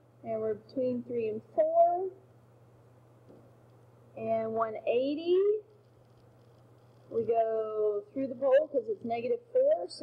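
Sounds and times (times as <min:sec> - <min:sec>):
low steady hum: 0:00.0 - 0:10.0
woman speaking: 0:00.2 - 0:02.2, 0:04.2 - 0:05.7, 0:07.1 - 0:10.0.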